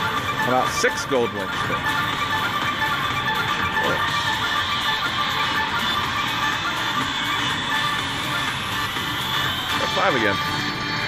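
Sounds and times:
electronic slot machine music: 0:00.0 - 0:11.0.

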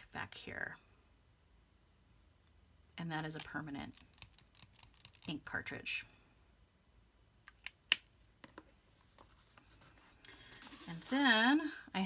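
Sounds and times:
rustle of canvas and pens: 0:08.5 - 0:11.7.

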